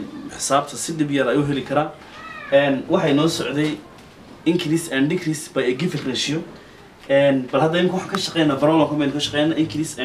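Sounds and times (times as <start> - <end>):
man speaking: 0.0 - 3.8, 4.5 - 10.0.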